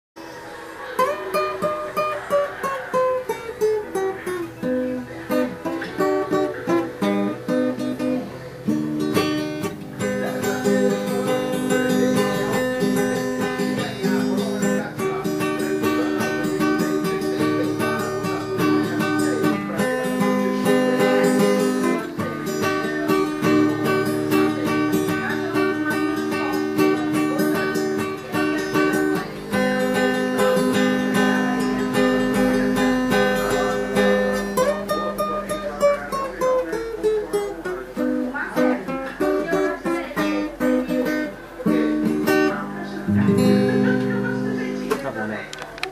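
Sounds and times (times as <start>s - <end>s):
classical guitar picking and strumming: 0.2s - 45.9s.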